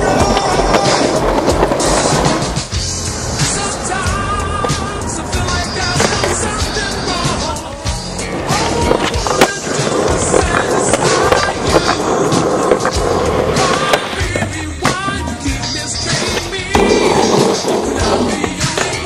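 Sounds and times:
music with singing: 0.0s - 19.0s
skateboard tail clacking: 0.0s - 19.0s
skateboard wheels rolling on concrete: 0.0s - 19.0s.

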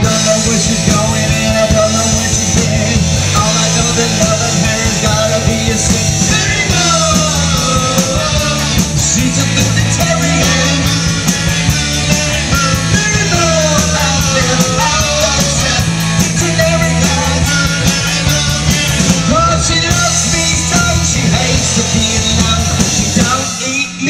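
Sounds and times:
bass guitar: 0.0s - 24.0s
drum kit: 0.0s - 24.0s
electric guitar: 0.0s - 24.0s.

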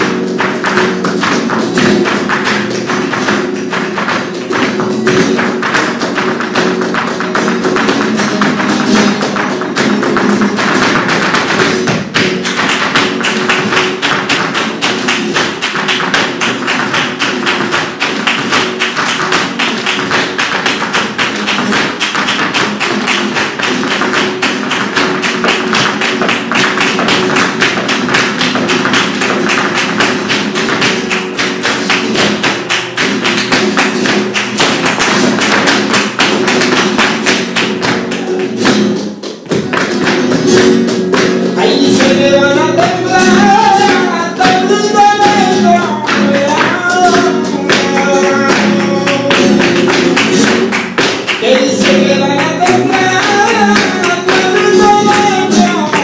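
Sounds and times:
dancer's heel and toe strikes: 0.0s - 56.0s
flamenco guitar: 0.0s - 56.0s
hand clapping: 0.0s - 56.0s.

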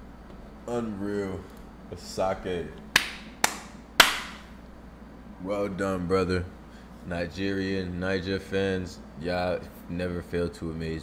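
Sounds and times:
man clapping hands: 2.9s - 4.5s.

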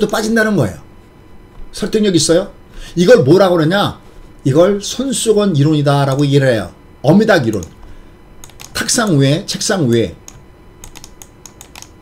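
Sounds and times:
computer keys clicking: 6.1s - 6.3s, 7.5s - 9.2s, 9.9s - 12.0s.

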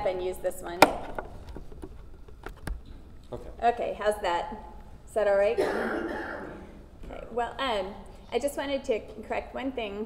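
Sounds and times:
microphone handling clicks and bumps: 0.8s - 3.3s.

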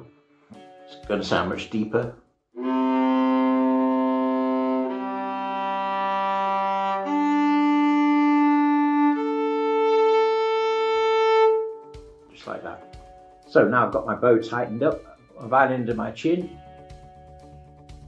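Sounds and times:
viola strings bowed: 2.6s - 12.0s.

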